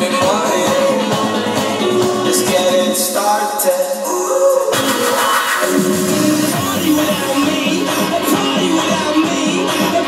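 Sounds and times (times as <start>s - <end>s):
dance music: 0.0s - 10.0s.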